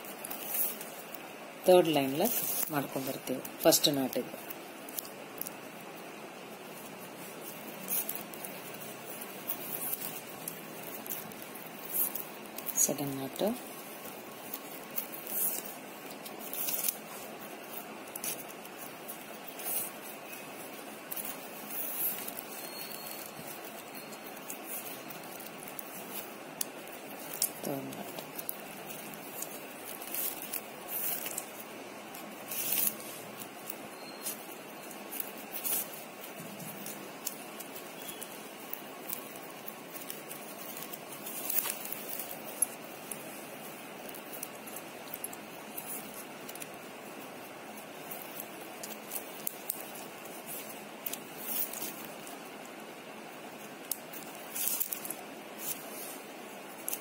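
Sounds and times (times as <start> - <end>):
plastic wire rustling and clicking: 0.0 - 57.0
steady hiss: 0.0 - 57.0.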